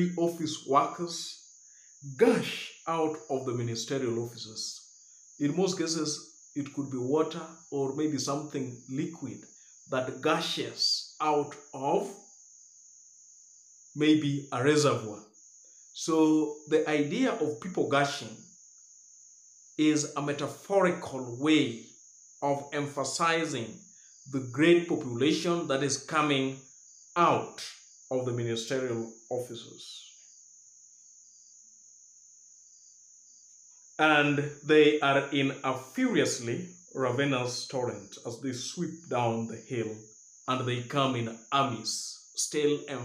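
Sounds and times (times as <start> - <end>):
man speaking: 0.0 - 1.3, 2.0 - 4.8, 5.4 - 12.1, 14.0 - 15.2, 16.0 - 18.4, 19.8 - 21.8, 22.4 - 26.6, 27.2 - 30.0, 34.0 - 43.0
faint high-pitched whine: 0.0 - 18.9, 19.7 - 43.0
high-pitched insect trill: 0.0 - 43.0.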